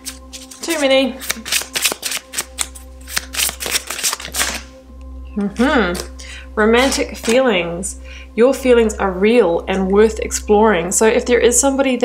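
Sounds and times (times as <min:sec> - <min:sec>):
cards being shuffled: 0:00.0 - 0:04.7, 0:05.5 - 0:06.1, 0:06.8 - 0:07.4.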